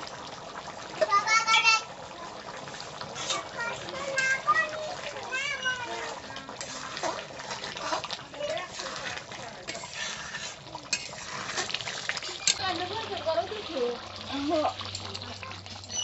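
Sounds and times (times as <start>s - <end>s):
metal spatula scraping a pan: 2.8s - 13.2s.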